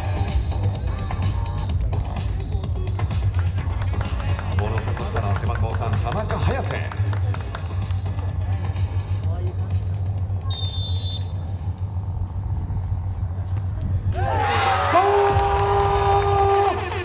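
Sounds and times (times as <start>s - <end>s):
steady low hum: 6.2s - 14.4s.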